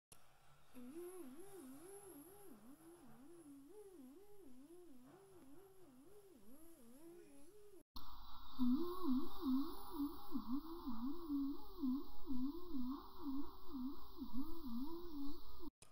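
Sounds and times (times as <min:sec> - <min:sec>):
faint wobbling hum: 0:00.7 - 0:15.7.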